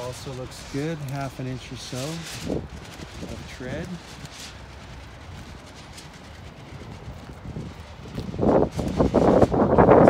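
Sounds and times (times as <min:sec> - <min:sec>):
low outdoor rumble: 0:00.0 - 0:10.0
wind on microphone: 0:00.0 - 0:10.0.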